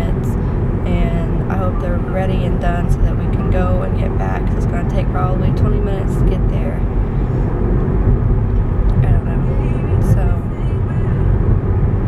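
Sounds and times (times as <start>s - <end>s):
woman talking: 0.0s - 6.9s, 8.9s - 11.4s
car cabin rumble: 0.0s - 12.0s.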